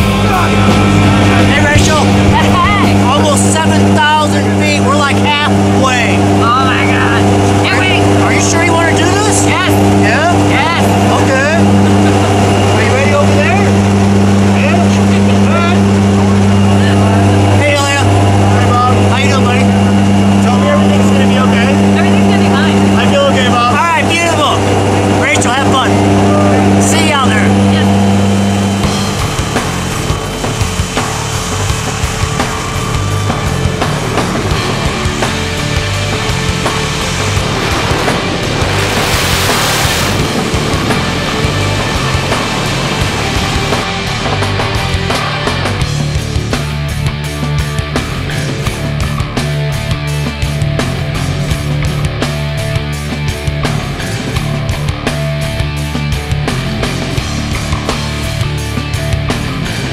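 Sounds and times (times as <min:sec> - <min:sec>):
airplane engine drone in cabin: 0:00.0 - 0:45.9.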